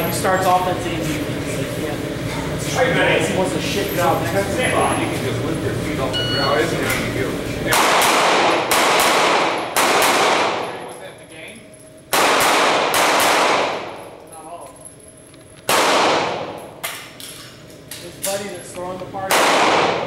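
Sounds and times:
pistol shots echoing indoors: 0:07.7 - 0:10.9, 0:12.1 - 0:14.1, 0:15.6 - 0:17.5, 0:19.2 - 0:20.0.

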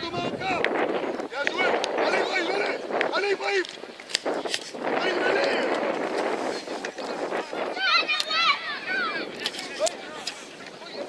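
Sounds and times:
young children shouting: 0:07.6 - 0:09.4.

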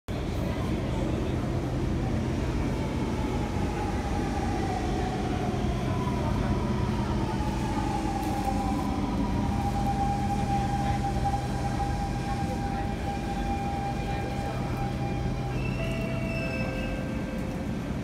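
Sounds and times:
standing train hum: 0:00.1 - 0:18.0.

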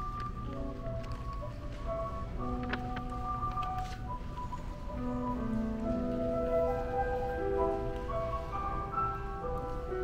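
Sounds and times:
grand piano slow melody: 0:00.0 - 0:10.0.

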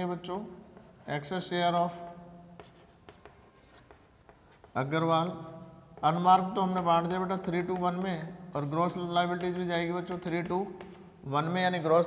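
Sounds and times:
chalk tapping and scratching: 0:00.0 - 0:01.0, 0:01.9 - 0:11.3.

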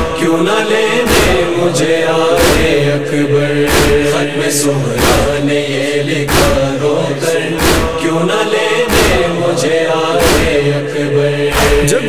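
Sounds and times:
chorus chanting a lament: 0:00.0 - 0:12.0
deep thuds: 0:01.1 - 0:01.6, 0:02.3 - 0:02.9, 0:03.6 - 0:04.2, 0:05.0 - 0:05.6, 0:06.2 - 0:06.9, 0:07.5 - 0:08.1, 0:08.9 - 0:09.4, 0:10.2 - 0:10.8, 0:11.5 - 0:12.0.

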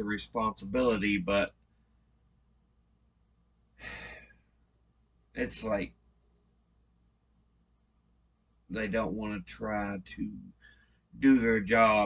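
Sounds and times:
man sighing: 0:03.8 - 0:04.4.

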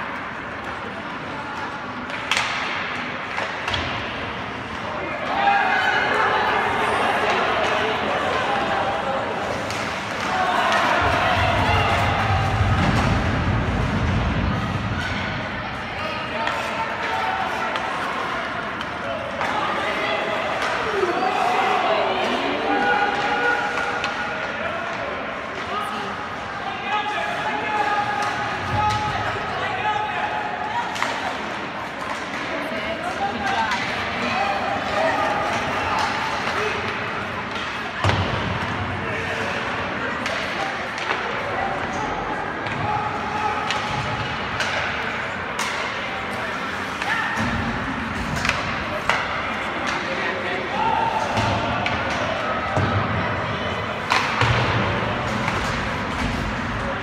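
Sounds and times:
voices echoing in arena: 0:00.0 - 0:57.0
hockey sticks and puck knocking: 0:01.6 - 0:04.1, 0:39.6 - 0:50.2, 0:54.0 - 0:57.0.

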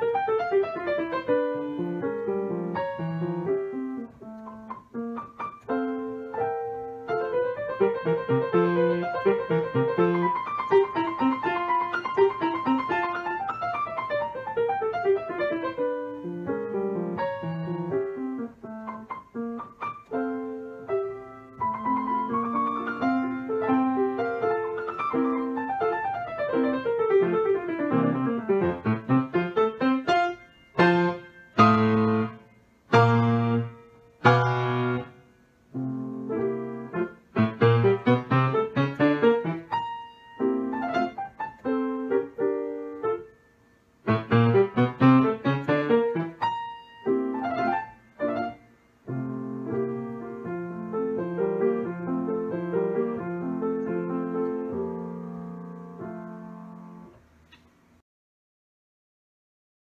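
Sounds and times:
solo piano classical piece: 0:00.0 - 0:58.0.

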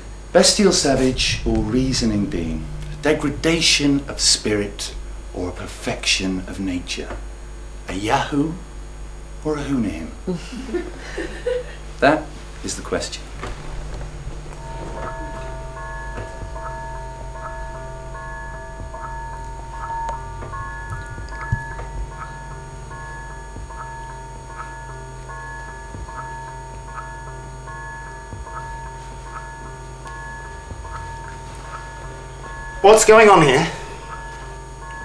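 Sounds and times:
low steady hum: 0:00.0 - 0:35.0
held electronic tone: 0:00.7 - 0:05.4, 0:28.3 - 0:35.0.

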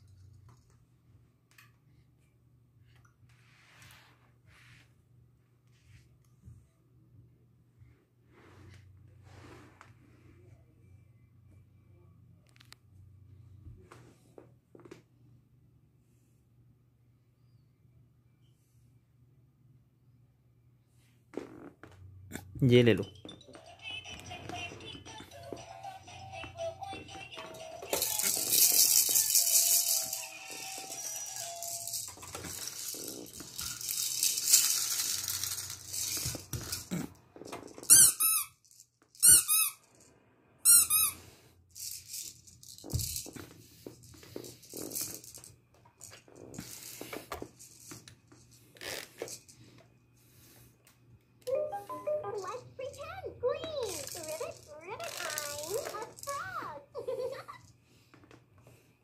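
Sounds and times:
electronic toy tune: 0:23.0 - 0:28.2, 0:29.2 - 0:32.0, 0:51.5 - 0:52.6
plastic baby rattle shaking: 0:23.4 - 0:39.8, 0:41.7 - 0:49.6, 0:52.4 - 0:56.5.

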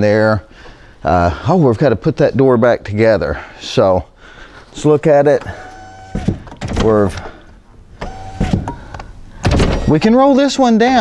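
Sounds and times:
car door clunk: 0:08.0 - 0:09.9.

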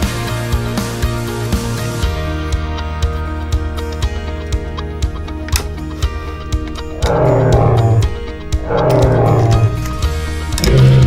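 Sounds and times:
background music: 0:00.0 - 0:11.0
animal roar sound effect: 0:06.8 - 0:11.0.

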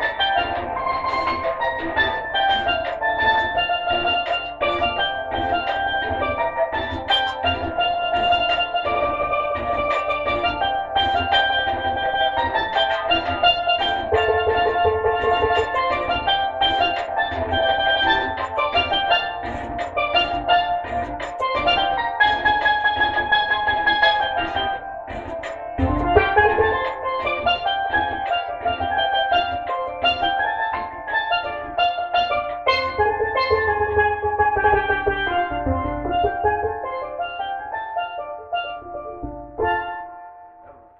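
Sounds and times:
low accompaniment: 0:00.0 - 0:40.9
steel pan reggae melody: 0:00.0 - 0:40.9.

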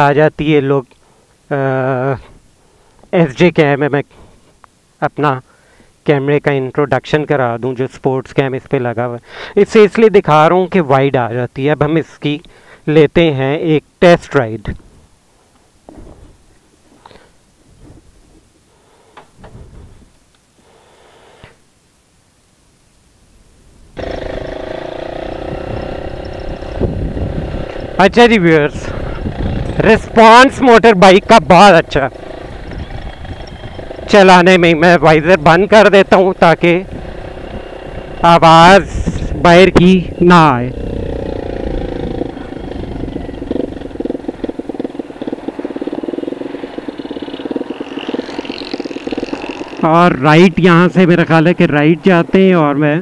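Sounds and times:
motorcycle engine pulling away: 0:24.0 - 0:39.4, 0:40.0 - 0:50.3.

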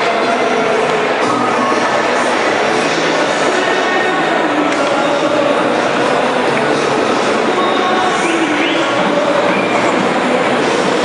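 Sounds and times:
arena hall noise: 0:00.0 - 0:11.0
loud music over loudspeakers: 0:00.0 - 0:11.0.

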